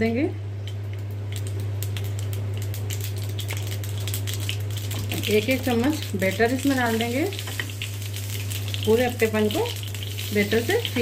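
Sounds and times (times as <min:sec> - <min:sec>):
steady low hum: 0:00.0 - 0:11.0
seeds popping in hot oil: 0:00.6 - 0:11.0.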